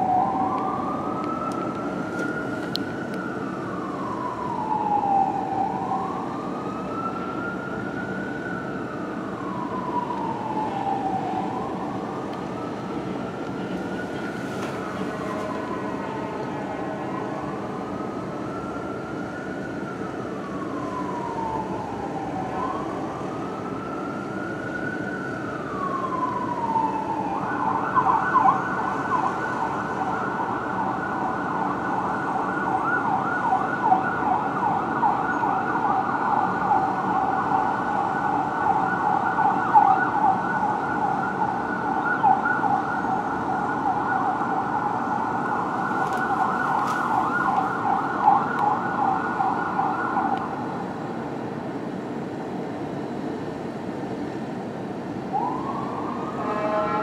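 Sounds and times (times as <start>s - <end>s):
fire engine siren wail and yelp: 0.0s - 57.0s.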